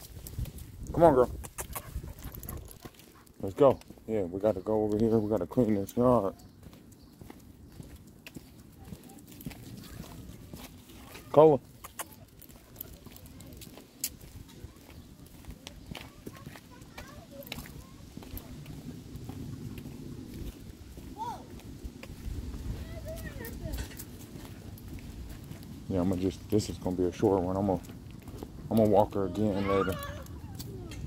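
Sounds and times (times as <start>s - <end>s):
dog's paws on concrete: 0.0s - 31.0s
footsteps on concrete: 0.0s - 31.0s
low rumble: 18.2s - 26.5s.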